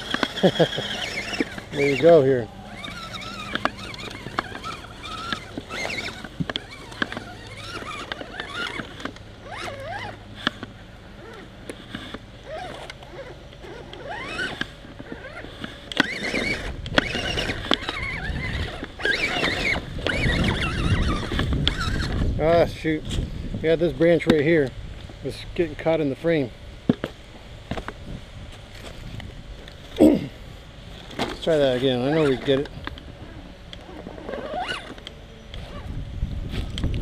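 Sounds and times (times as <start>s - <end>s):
electric motor whining: 0.0s - 23.9s, 31.0s - 37.0s.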